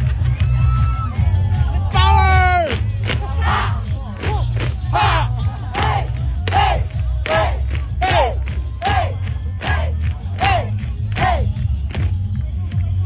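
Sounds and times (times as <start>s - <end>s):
steady low rumble: 0.0s - 13.0s
dancers shouting in unison: 4.9s - 6.8s.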